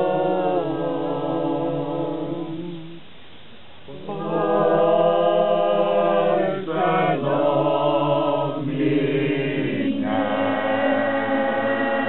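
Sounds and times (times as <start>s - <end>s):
male choir singing: 0.0s - 3.0s, 3.9s - 12.0s.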